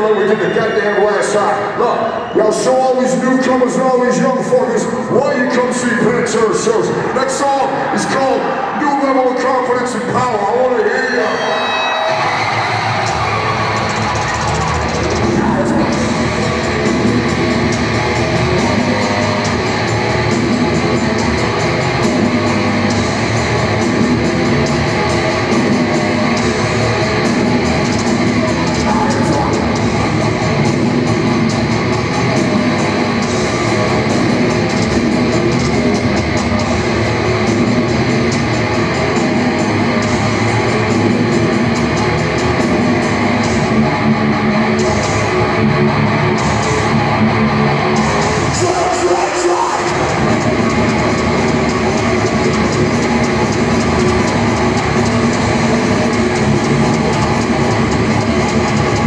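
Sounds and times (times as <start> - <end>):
heavy metal band playing live: 0.0 - 59.0.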